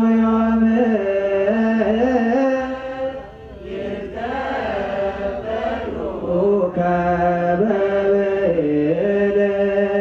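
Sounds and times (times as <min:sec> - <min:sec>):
voices chanting a hymn: 0:00.0 - 0:10.0.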